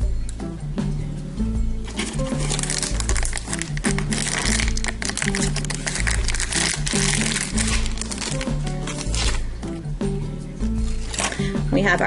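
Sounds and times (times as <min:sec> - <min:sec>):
background music with bass line: 0:00.0 - 0:12.0
foil bag crinkling: 0:01.8 - 0:09.5, 0:10.9 - 0:11.5.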